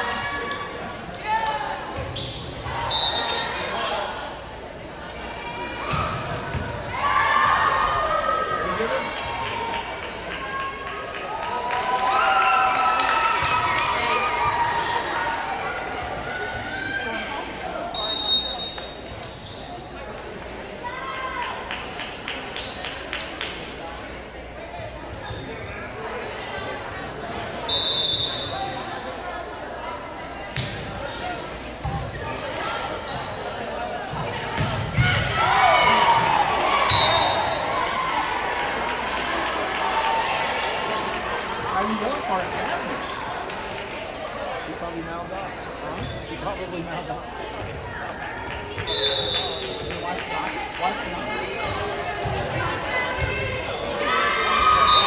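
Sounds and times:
players' voices: 0.0s - 55.0s
referee's whistle: 2.8s - 3.5s, 17.9s - 18.8s, 27.5s - 28.6s, 36.9s - 37.6s, 48.8s - 49.9s, 54.7s - 55.0s.

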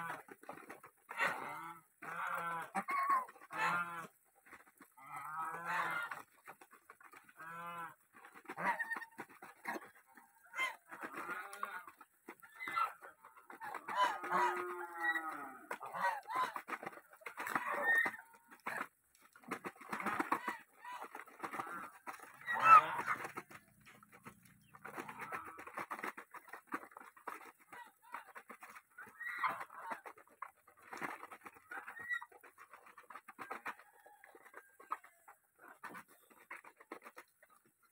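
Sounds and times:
geese pecking grain: 0.0s - 37.9s
geese calling: 20.0s - 26.5s.

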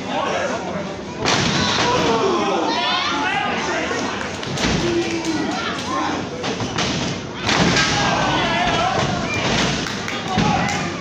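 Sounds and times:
people shouting: 1.6s - 3.8s, 7.4s - 9.5s.

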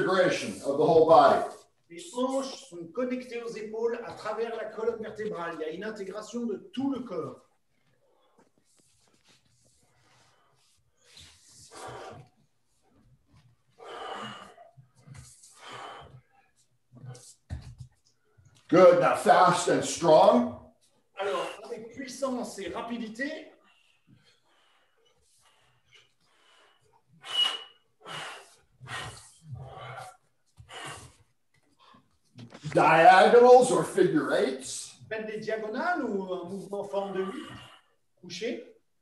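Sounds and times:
quiet breathing: 7.7s - 17.5s, 23.5s - 32.3s
forceful breathy exhalations: 9.7s - 12.4s, 13.7s - 17.4s, 23.7s - 32.1s.

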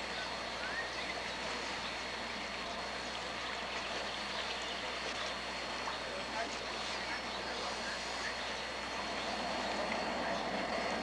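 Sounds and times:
faint distant voices: 0.0s - 11.0s
high steady whine: 0.0s - 11.0s.

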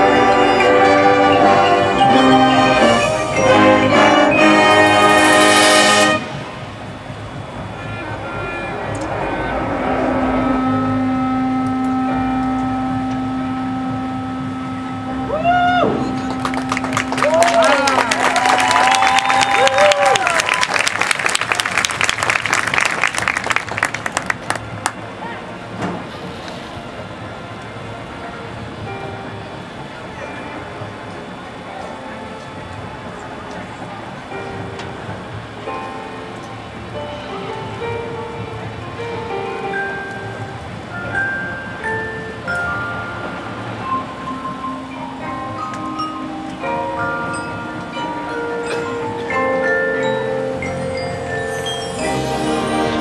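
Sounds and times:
marching band holding a chord: 0.0s - 53.0s
low outdoor rumble: 6.1s - 39.6s.

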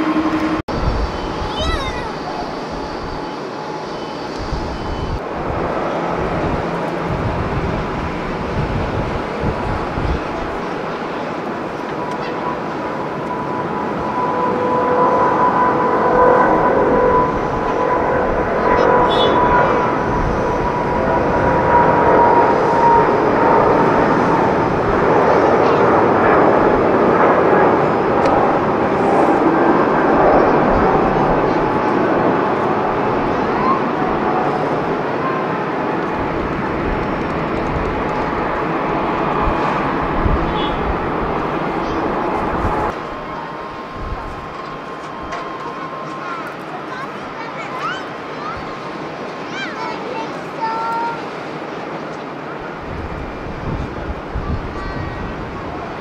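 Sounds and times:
jet engine roar: 0.0s - 56.0s
jet fan whine: 0.0s - 56.0s.

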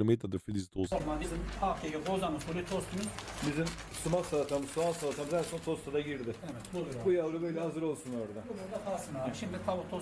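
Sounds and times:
man talking: 0.0s - 8.3s.

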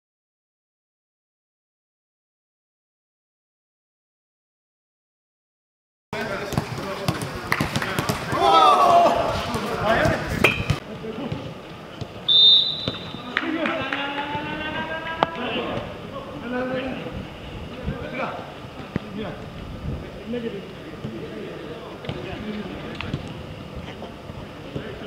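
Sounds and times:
players calling out: 6.4s - 10.3s
footballs being kicked: 6.4s - 12.2s
high whistle: 12.3s - 13.3s.

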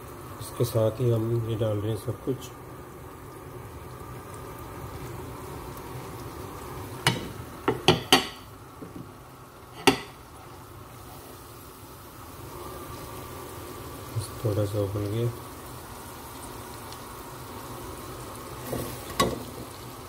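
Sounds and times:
kitchenware clinking against pot: 7.1s - 8.4s, 9.8s - 10.2s.

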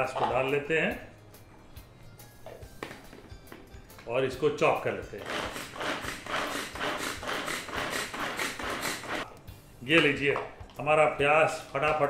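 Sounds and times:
pull-cord chopper whirring: 5.2s - 9.3s.

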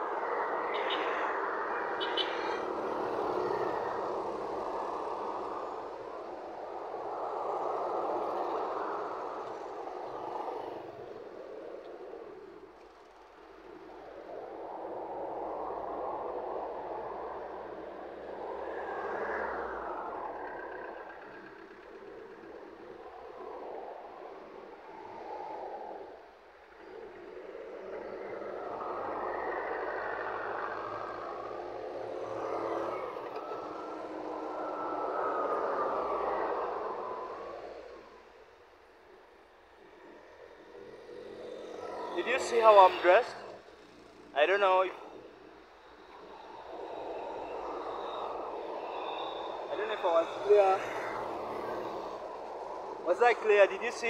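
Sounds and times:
vehicles passing close by: 0.0s - 14.3s, 15.3s - 54.0s.

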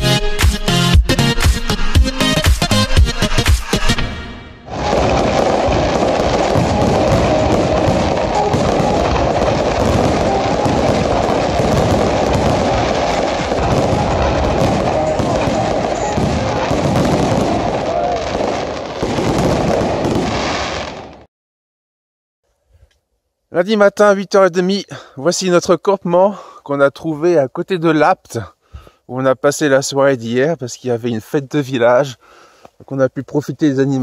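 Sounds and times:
fireworks crackling and banging: 4.7s - 21.3s.

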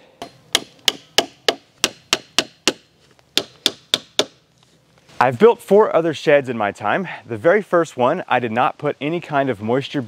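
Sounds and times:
hammer striking nails into wood: 0.2s - 4.4s.

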